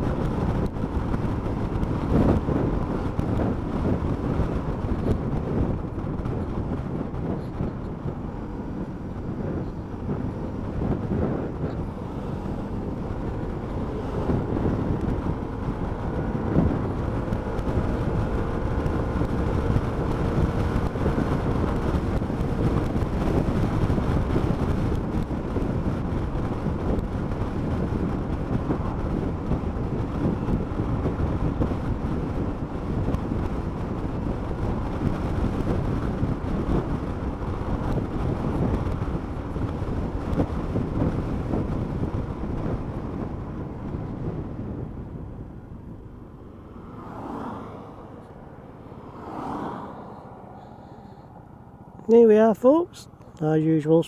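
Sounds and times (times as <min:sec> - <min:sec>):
road noise: 0:00.0 - 0:54.0
wind rushing on microphone: 0:00.0 - 0:54.0.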